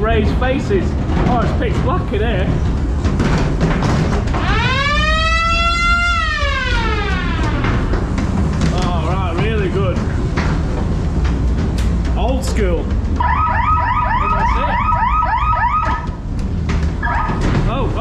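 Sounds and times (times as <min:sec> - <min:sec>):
low rumble of ride: 0:00.0 - 0:18.0.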